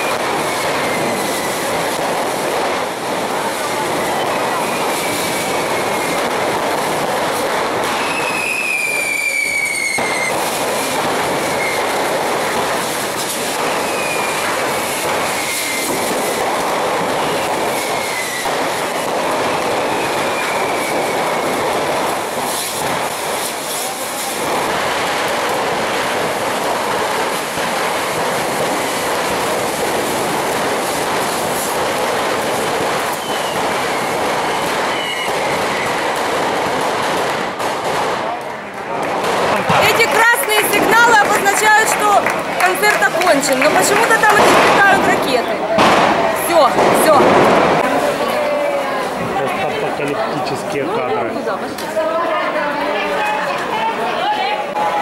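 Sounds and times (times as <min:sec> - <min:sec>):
falling firework whistles: 0:00.0 - 0:38.3
firework rockets hissing: 0:00.0 - 0:55.0.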